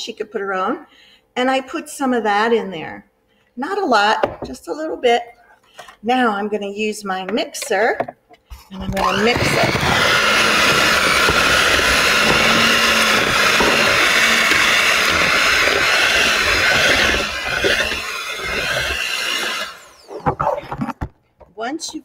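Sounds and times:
electric hand mixer running: 0:08.8 - 0:20.9.

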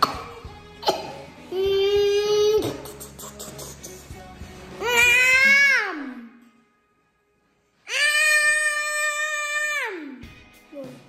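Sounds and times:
boy imitating car engine: 0:01.5 - 0:04.0.

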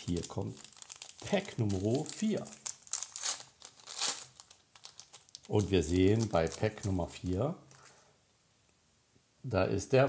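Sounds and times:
plastic wrapper crinkling and tearing: 0:00.0 - 0:08.0.

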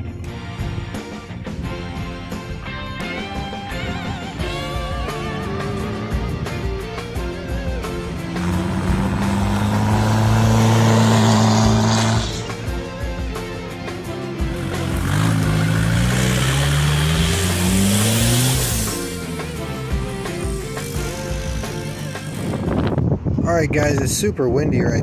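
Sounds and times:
music: 0:00.0 - 0:23.3
diesel engine revving: 0:02.2 - 0:23.2.

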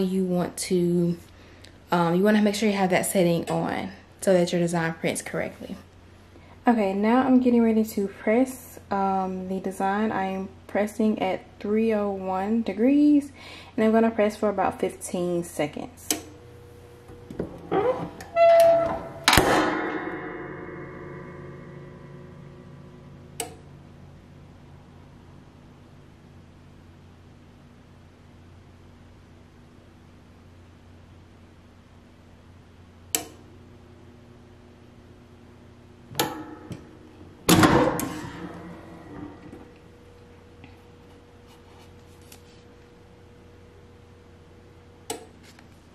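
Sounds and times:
heat press metallic clank: 0:17.1 - 0:23.6, 0:36.1 - 0:39.8
metallic clunk ringing: 0:17.4 - 0:23.5, 0:36.2 - 0:39.8
small click: 0:33.1 - 0:33.4.

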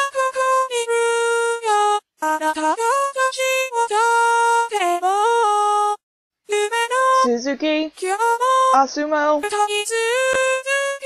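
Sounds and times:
synthesized female singing voice: 0:06.5 - 0:11.0.

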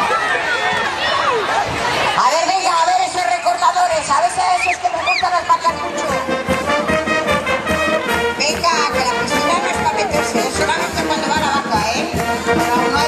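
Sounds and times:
crowd voices and shouts: 0:00.0 - 0:13.0
brass band music: 0:05.3 - 0:13.0.

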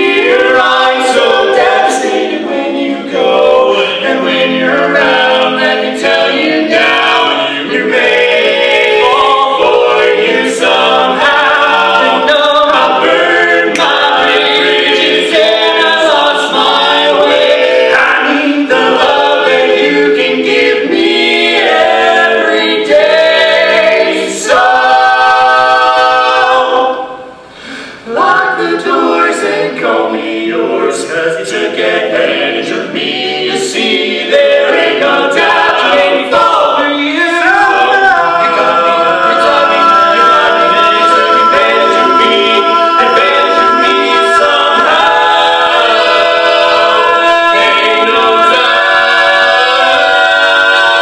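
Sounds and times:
male quartet singing a cappella: 0:00.0 - 0:51.0.

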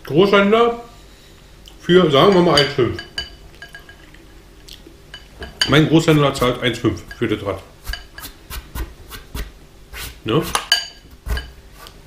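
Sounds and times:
fork clinking on glass bowl: 0:10.6 - 0:11.5.

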